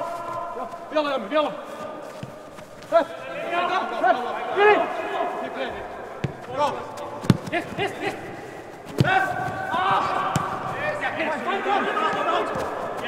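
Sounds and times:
players shouting: 0.0 - 2.1, 2.8 - 13.0
football kick thuds: 6.2 - 7.8, 8.8 - 10.8.

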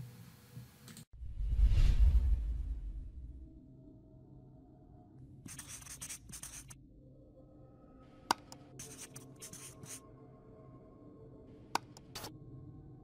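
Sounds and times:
marker pen scratching: 5.5 - 6.8, 8.3 - 10.0, 11.8 - 12.3.

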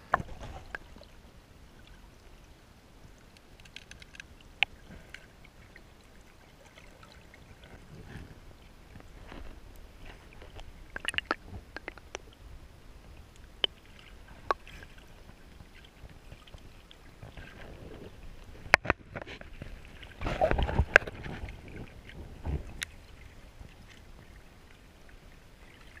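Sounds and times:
gravel clicking underwater: 0.0 - 1.1, 3.2 - 5.8, 7.6 - 12.4, 13.2 - 23.0
churning water: 0.0 - 26.0
low underwater rumble: 7.0 - 26.0.

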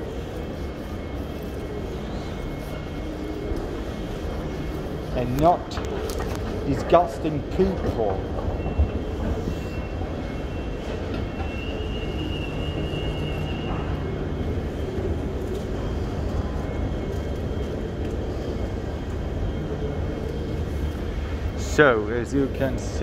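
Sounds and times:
escalator running: 0.0 - 23.0
faint high whine: 0.0 - 23.0
train at platform humming: 0.0 - 23.0.

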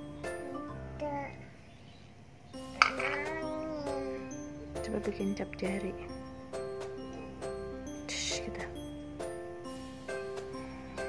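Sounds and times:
gentle background music: 0.0 - 11.0
bowl clacking on tiled floor: 2.8 - 3.2.

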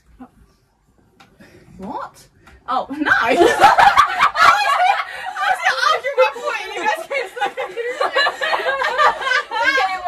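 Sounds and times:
women talking: 1.8 - 4.0, 5.2 - 8.3, 8.9 - 10.0
women laughing: 3.1 - 10.0.

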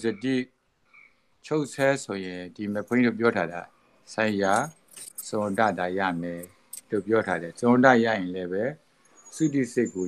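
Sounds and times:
man speaking: 0.0 - 0.5, 1.5 - 8.8, 9.4 - 10.0
high jingle: 4.2 - 7.7.

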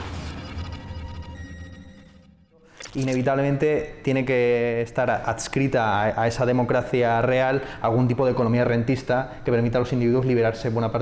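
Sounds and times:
electronic intro sting: 0.0 - 3.3
rising glitchy whoosh: 0.0 - 3.3
man speaking: 2.7 - 11.0.

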